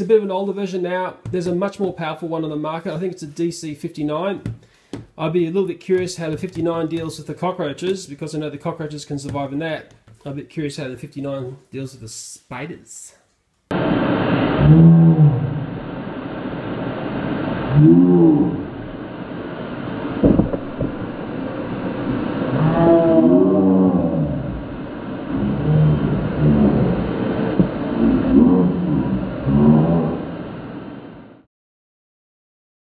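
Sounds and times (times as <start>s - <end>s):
vacuum cleaner low drone: 13.7s - 31.4s
deep drawn-out voice sounds: 14.6s - 15.8s, 17.7s - 18.8s, 22.5s - 30.4s
sharp knock: 20.2s - 21.0s.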